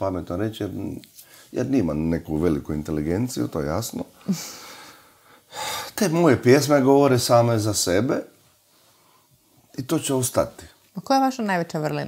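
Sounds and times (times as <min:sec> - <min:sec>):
man speaking: 0:00.0 - 0:04.3, 0:05.8 - 0:08.4, 0:09.7 - 0:10.8
man breathing: 0:04.2 - 0:06.0.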